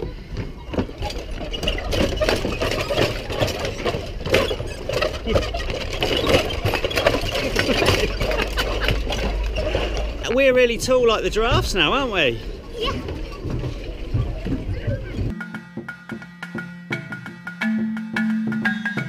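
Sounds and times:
footsteps on wooden planks: 0:00.0 - 0:15.4.

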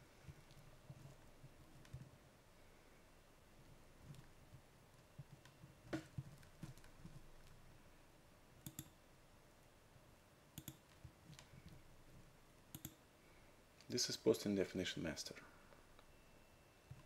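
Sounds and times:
computer mouse clicking: 0:00.3 - 0:02.1, 0:08.6 - 0:09.0, 0:10.6 - 0:11.8, 0:12.7 - 0:13.0
person speaking: 0:13.9 - 0:15.5.

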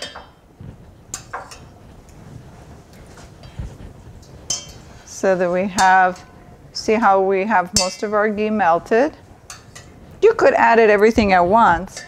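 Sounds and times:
metal spoon clinking on pot: 0:00.0 - 0:00.4, 0:01.1 - 0:01.8, 0:04.4 - 0:04.8, 0:05.7 - 0:06.3, 0:07.7 - 0:08.2, 0:09.5 - 0:10.0.

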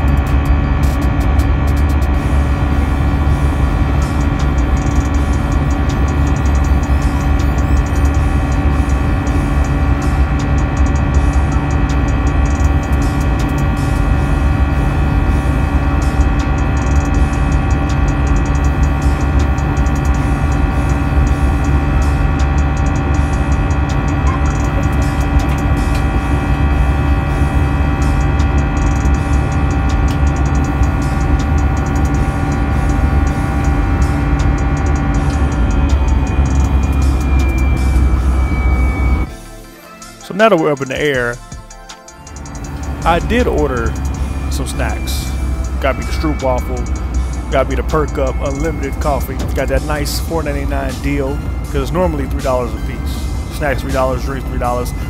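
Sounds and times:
jet engine rumble in cabin: 0:00.0 - 0:39.3
whining fan tones: 0:00.0 - 0:55.0.

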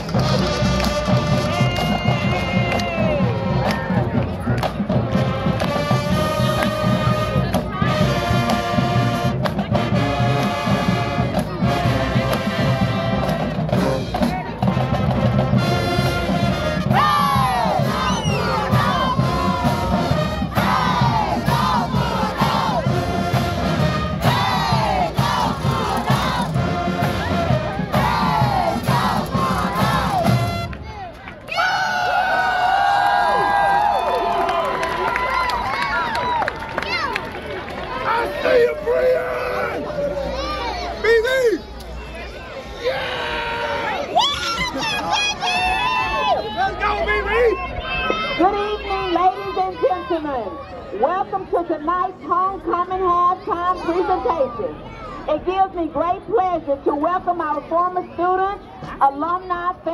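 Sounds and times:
brass playing: 0:00.0 - 0:02.5, 0:05.0 - 0:30.9
drumline beat: 0:00.0 - 0:31.1
people shouting: 0:16.9 - 0:23.0, 0:24.2 - 0:30.4, 0:37.9 - 0:50.3.

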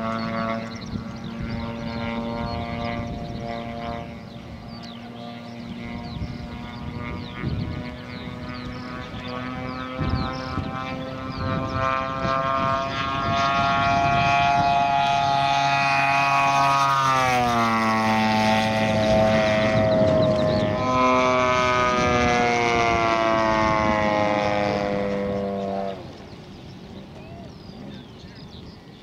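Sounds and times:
model plane engine buzz: 0:00.0 - 0:29.0.

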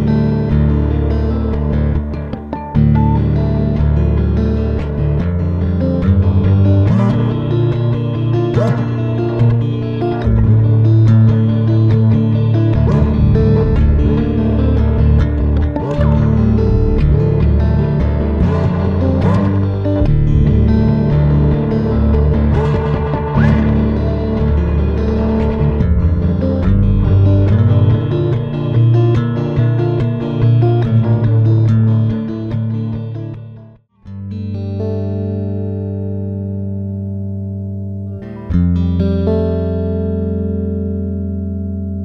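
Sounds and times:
electric guitar with echo: 0:00.0 - 0:42.0.

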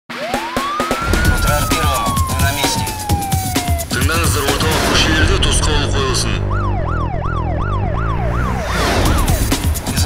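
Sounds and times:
siren wail: 0:00.1 - 0:09.8
dramatic music with percussive beat: 0:00.2 - 0:10.0.

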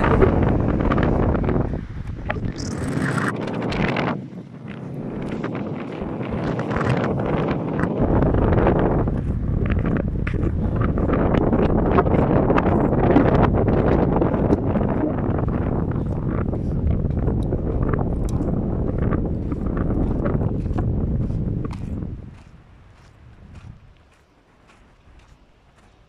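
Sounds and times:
strong wind buffeting microphone: 0:00.0 - 0:26.0.

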